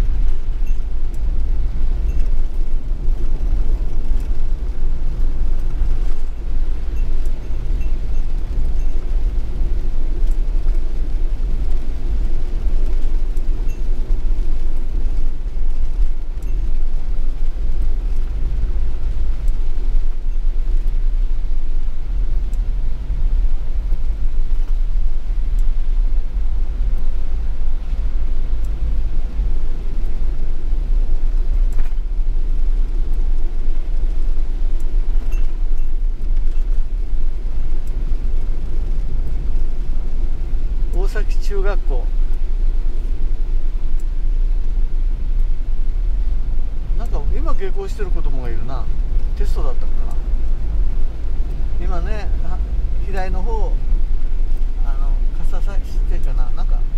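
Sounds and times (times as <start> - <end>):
tyres on wet road: 0.0 - 56.9
van engine rumble: 0.0 - 56.9.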